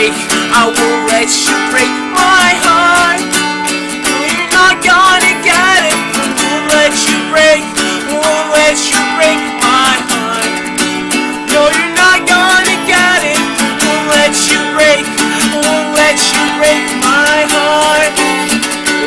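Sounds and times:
man singing wordless melody: 0.0 - 3.3, 4.0 - 19.0
acoustic guitar strumming: 0.0 - 19.0.

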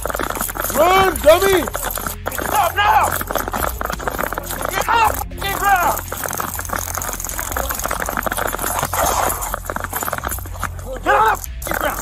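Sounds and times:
body-worn camera jostling: 0.0 - 12.0
running footsteps: 0.0 - 12.0
officer shouting: 0.7 - 3.3, 4.7 - 6.0, 10.8 - 12.0.

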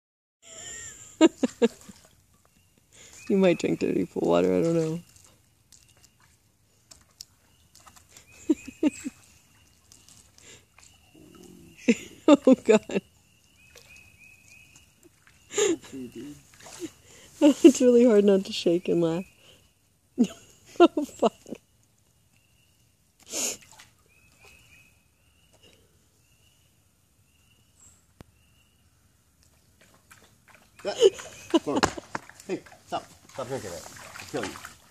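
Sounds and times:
dog lapping in puddle: 1.4 - 17.4, 23.3 - 24.8, 29.4 - 34.9
stifled laughter: 8.3 - 9.2, 30.8 - 32.2.

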